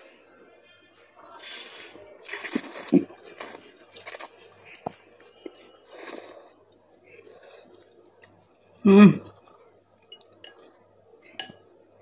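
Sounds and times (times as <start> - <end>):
chewing: 1.5 - 12.0.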